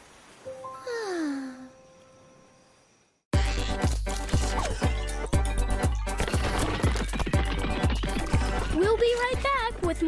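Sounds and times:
upbeat music with drumbeat: 3.4s - 10.0s.

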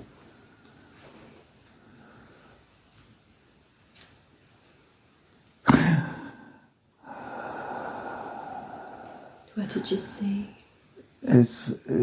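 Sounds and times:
person breathing out: 6.2s - 10.3s.

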